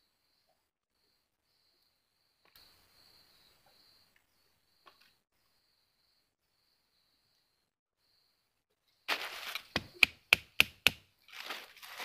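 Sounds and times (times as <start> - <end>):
rustling in dry leaf litter: 9.1 - 9.8, 11.2 - 12.0
tool knocking on wood: 9.8 - 11.0.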